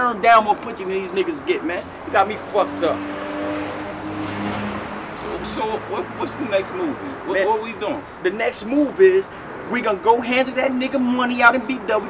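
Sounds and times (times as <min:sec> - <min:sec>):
car driving by: 0:01.8 - 0:06.6.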